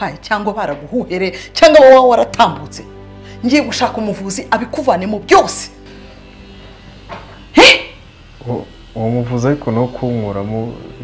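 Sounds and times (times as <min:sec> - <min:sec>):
dog barking: 0:07.6 - 0:08.0.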